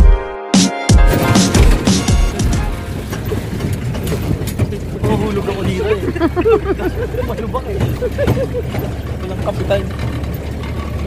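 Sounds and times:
vehicle engine and cabin rumble: 1.1s - 11.0s.

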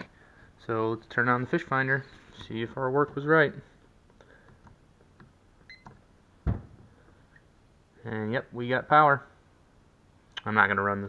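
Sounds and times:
sharp knock: 6.4s - 6.9s.

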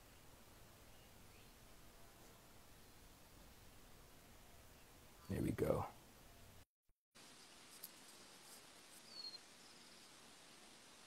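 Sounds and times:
faint outdoor hiss: 0.0s - 6.6s, 7.2s - 11.0s.

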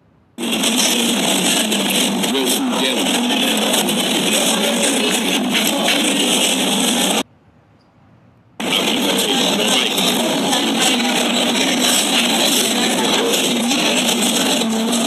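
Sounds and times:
indistinct restaurant chatter: 0.4s - 7.3s, 8.6s - 15.0s.

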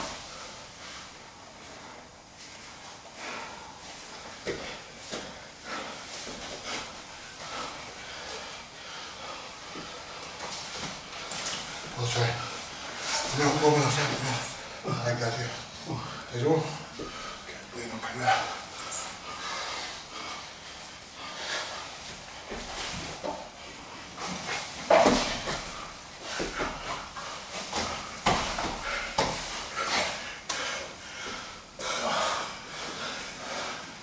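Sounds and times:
heavy breathing and grunts: 3.2s - 34.0s
bodies knocking against mat: 24.3s - 25.7s, 26.4s - 30.0s.

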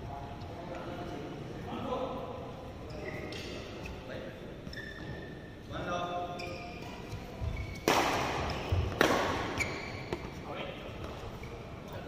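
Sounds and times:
shoe squeak on court: 2.9s - 5.6s, 6.3s - 10.4s
racket hitting shuttlecock: 7.7s - 10.3s.

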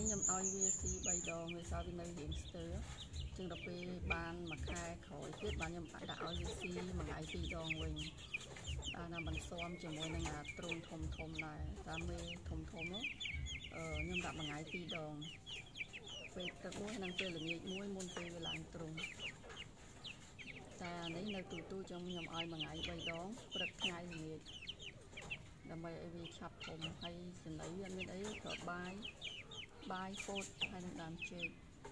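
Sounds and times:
chickens clucking: 0.0s - 31.9s
chicks peeping: 0.0s - 31.9s.

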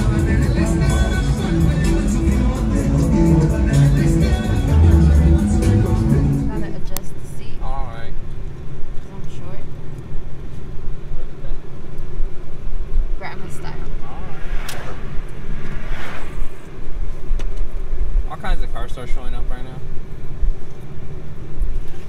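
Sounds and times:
road and wind noise in car: 0.0s - 22.0s
voices: 3.8s - 8.1s, 13.1s - 16.7s.

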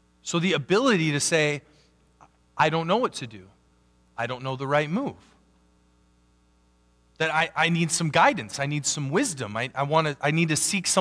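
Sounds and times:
faint mains hum: 0.0s - 11.0s
person speaking: 7.2s - 11.0s.

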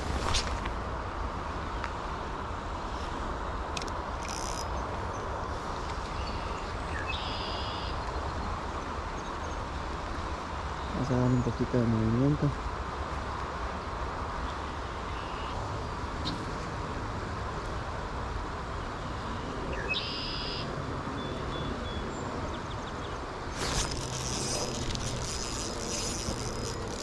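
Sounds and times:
fishing reel buzzing: 3.8s - 4.8s, 23.5s - 27.0s
flowing river water: 23.3s - 27.0s
rain hiss: 23.4s - 27.0s.

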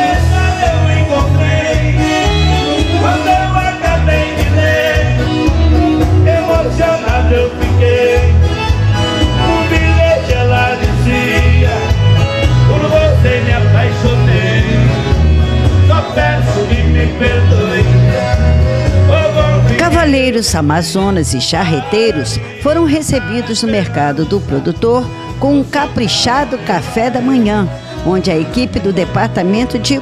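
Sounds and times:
steady bass beat: 0.0s - 28.8s
acoustic guitars: 0.0s - 30.0s
male singer: 0.0s - 30.0s
piano accordion: 0.0s - 30.0s.

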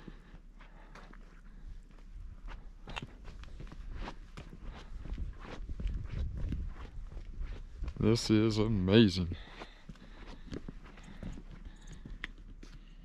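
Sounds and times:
footsteps on paved path: 0.0s - 13.0s.

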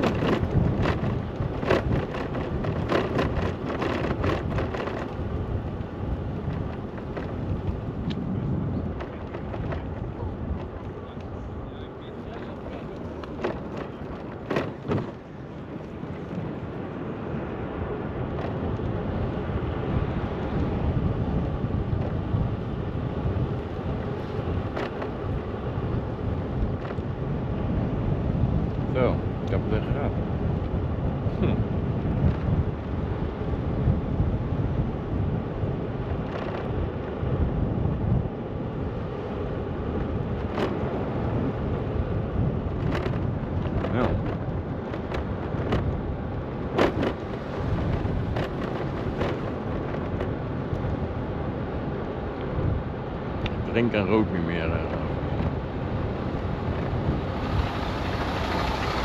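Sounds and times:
low rumble of riding on pavement: 0.0s - 59.0s
wind buffeting microphone: 0.0s - 59.0s.

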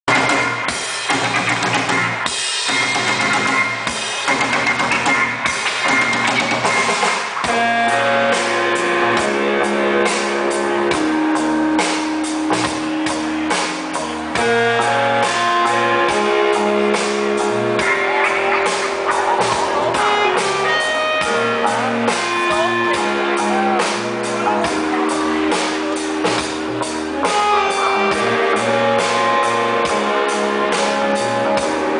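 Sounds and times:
guitar: 0.0s - 31.9s
drum kit beat: 0.1s - 31.9s.

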